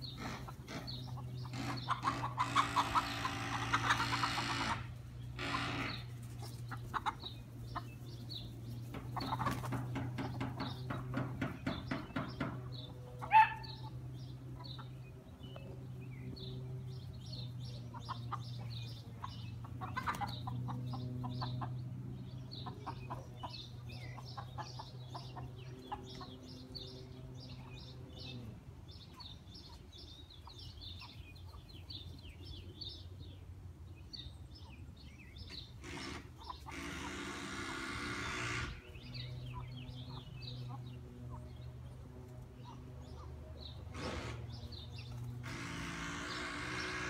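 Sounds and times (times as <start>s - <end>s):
chickens clucking: 0.0s - 32.4s, 35.4s - 47.0s.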